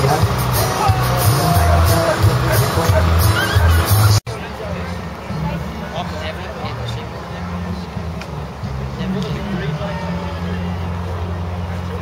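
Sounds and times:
engine humming: 0:00.0 - 0:12.0
people talking: 0:00.0 - 0:12.0.

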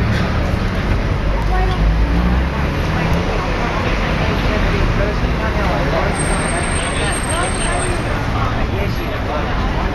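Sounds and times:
low traffic rumble: 0:00.0 - 0:09.9.

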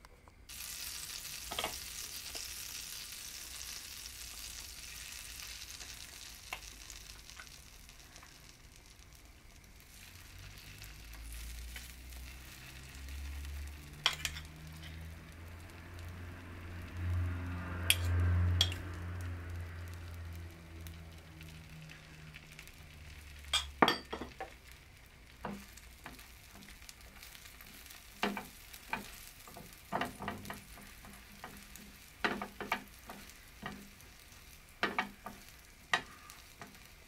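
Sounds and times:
egg and vegetables sizzling in pan: 0:00.5 - 0:37.0
utensils clicking against pan: 0:13.9 - 0:15.0, 0:17.8 - 0:18.9, 0:28.1 - 0:34.0, 0:34.8 - 0:36.8.

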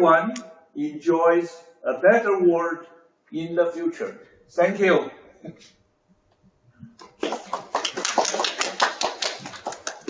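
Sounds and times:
hand clapping: 0:07.0 - 0:10.0.

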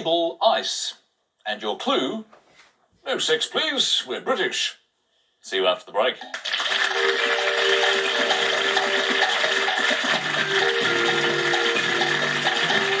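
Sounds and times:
synth chords over ticking pulse: 0:06.8 - 0:13.0.

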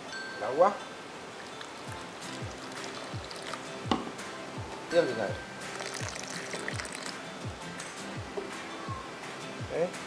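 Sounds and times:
water pouring into a bowl: 0:01.4 - 0:03.7, 0:05.6 - 0:07.2
background music with thuds: 0:01.9 - 0:10.0
sharp knock: 0:03.9 - 0:04.2.

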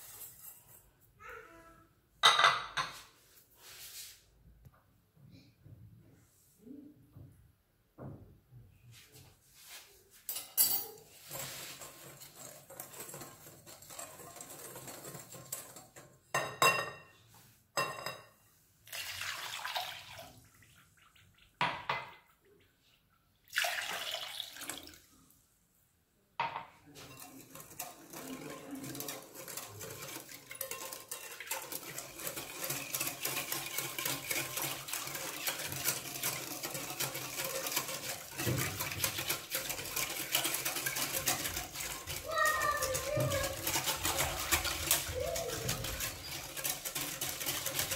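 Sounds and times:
whisk clinking against glass: 0:10.3 - 0:17.2, 0:27.0 - 0:47.9
fast whisking in glass bowl: 0:10.8 - 0:16.5, 0:26.9 - 0:47.9
liquid pouring: 0:18.8 - 0:21.6, 0:23.4 - 0:25.1.

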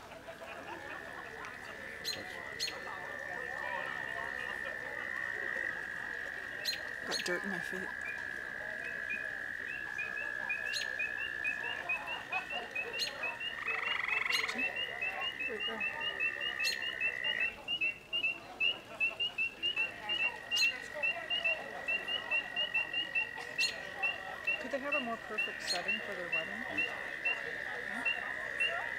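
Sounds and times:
frog high-pitched trill: 0:06.5 - 0:28.9
frog short chirps: 0:08.8 - 0:28.9.

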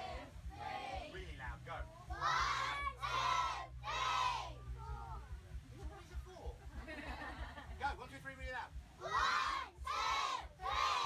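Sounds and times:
children shouting in unison: 0:02.1 - 0:04.6, 0:09.0 - 0:11.0.

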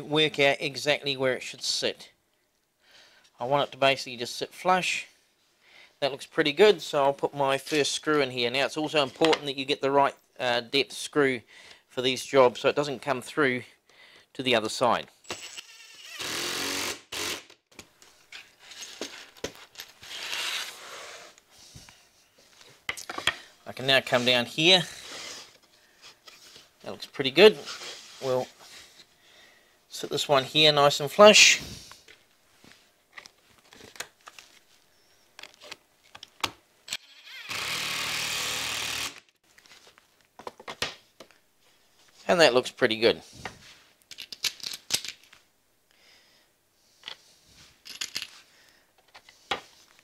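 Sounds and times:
cordless drill driving screw into wood: 0:15.2 - 0:17.6, 0:37.2 - 0:39.3
knocks and clicks handling wood: 0:40.4 - 0:41.4.

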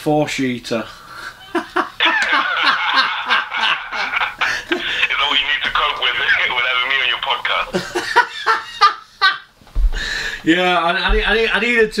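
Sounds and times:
man laughing over telephone: 0:01.4 - 0:06.6, 0:07.5 - 0:09.5
man talking over telephone: 0:04.8 - 0:07.8, 0:10.5 - 0:12.0.

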